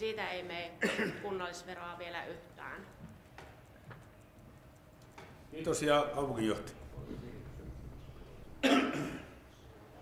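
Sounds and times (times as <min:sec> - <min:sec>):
faint room murmur: 0:00.0 - 0:10.0
loud cough: 0:00.8 - 0:01.3, 0:08.6 - 0:09.4.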